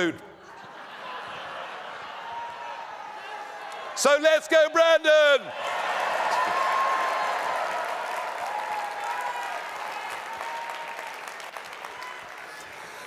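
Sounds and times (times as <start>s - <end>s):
audience applauding: 5.7s - 13.0s.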